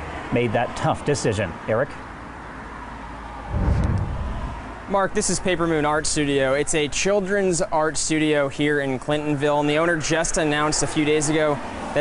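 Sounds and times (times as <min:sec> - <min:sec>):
low rumble: 0:03.5 - 0:04.9
steady low hiss: 0:03.5 - 0:06.8.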